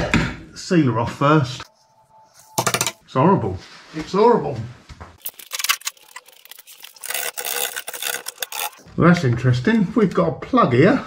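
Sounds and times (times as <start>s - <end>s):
hand scraper scraping metal: 6.8s - 8.8s.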